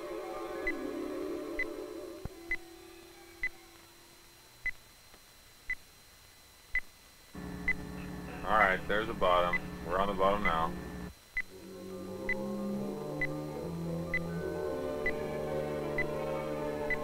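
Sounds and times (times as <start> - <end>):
low music tones: 0.0 - 4.7, 7.4 - 17.0
low hum: 0.0 - 17.0.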